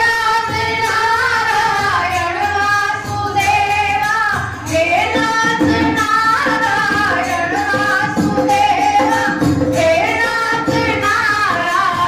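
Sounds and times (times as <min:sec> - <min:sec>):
women singing devotional song: 0:00.0 - 0:12.0.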